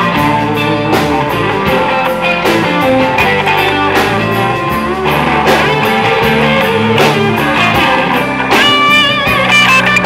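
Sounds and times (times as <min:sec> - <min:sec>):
electric guitar bending high notes: 0:00.0 - 0:10.0
live rock band: 0:00.0 - 0:10.0.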